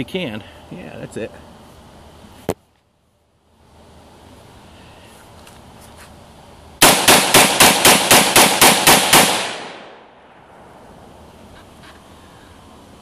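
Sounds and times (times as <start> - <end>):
rifle gunshots: 6.8 - 10.4.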